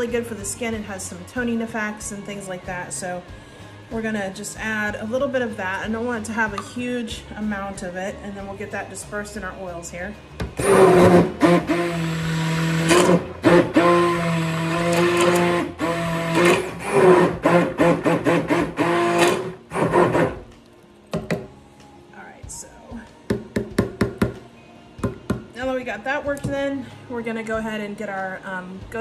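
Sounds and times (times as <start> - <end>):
stick blender motor whine: 10.6 - 20.4.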